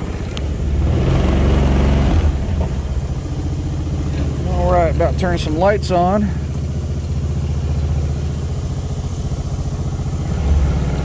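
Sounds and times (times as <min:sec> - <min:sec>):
kayak engine running: 0:03.0 - 0:11.0.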